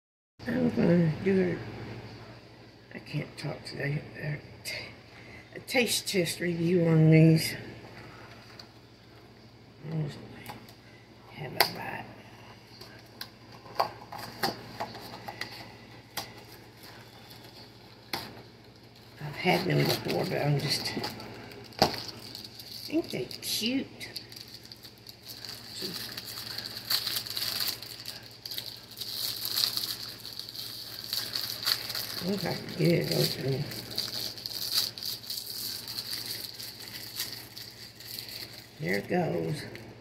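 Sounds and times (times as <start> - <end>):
plastic wrapper crinkling: 12.8 - 39.9.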